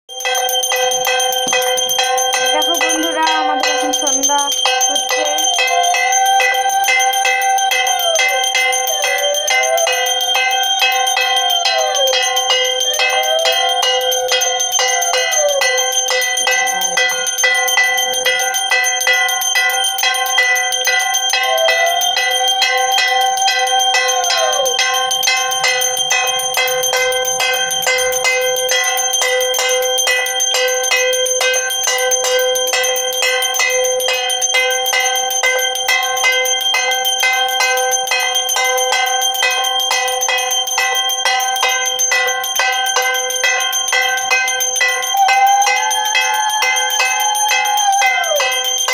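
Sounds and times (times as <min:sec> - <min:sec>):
bells ringing rapidly: 0:00.1 - 0:48.9.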